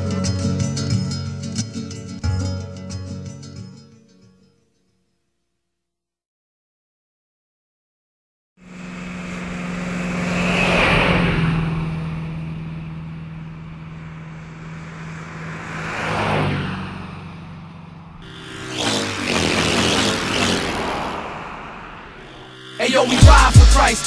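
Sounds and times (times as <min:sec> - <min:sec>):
motor vehicle low hum: 0:08.6 - 0:24.0.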